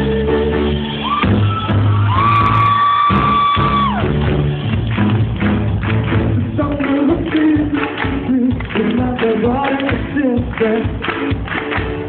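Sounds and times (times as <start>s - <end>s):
pop-rock band playing: 0.0s - 12.0s.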